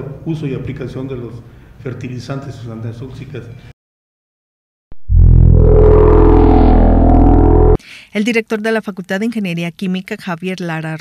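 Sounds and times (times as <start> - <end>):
deep synthesized chord sting: 5.0 - 7.8.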